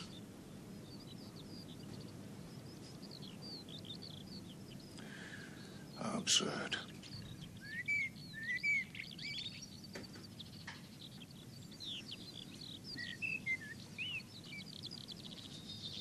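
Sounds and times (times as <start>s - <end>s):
small birds chirping and whistling: 0.0s - 16.0s
steady background hiss: 0.0s - 16.0s.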